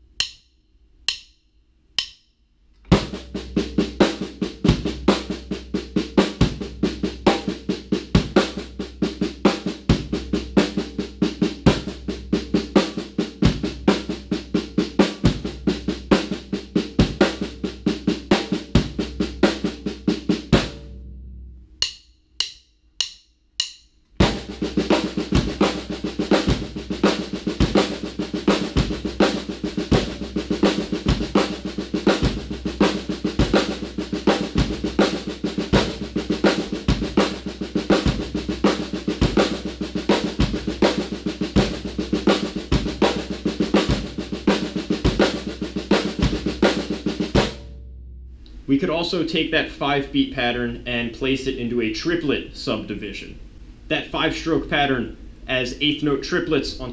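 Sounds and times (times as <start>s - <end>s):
drumstick clicks: 0.1s - 0.5s, 1.1s - 2.9s, 21.8s - 24.2s
bass drum: 2.9s - 22.0s, 24.2s - 49.6s.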